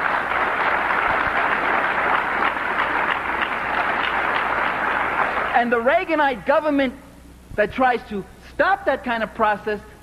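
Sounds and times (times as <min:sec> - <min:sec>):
audience applauding: 0:00.0 - 0:05.6.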